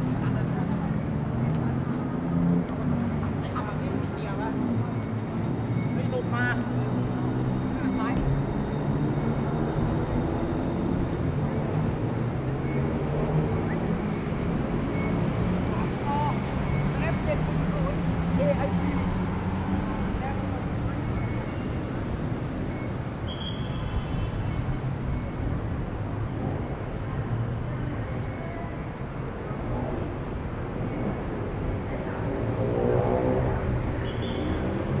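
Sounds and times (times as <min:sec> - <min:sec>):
traffic rumble: 0:00.0 - 0:35.0.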